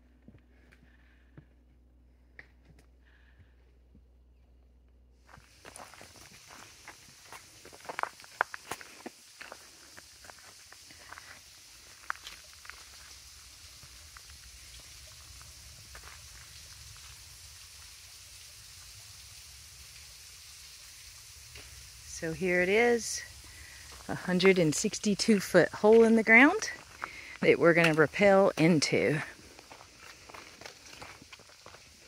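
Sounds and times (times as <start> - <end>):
footsteps on leaf litter: 5.2 - 14.7, 21.6 - 32.0
steady high hiss: 5.2 - 32.0.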